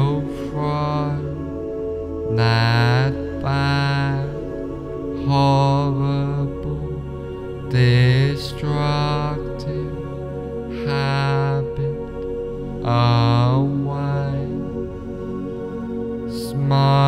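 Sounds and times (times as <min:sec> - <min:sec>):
chant-like held tones: 0:00.0 - 0:17.0
steady low drone: 0:00.0 - 0:17.0.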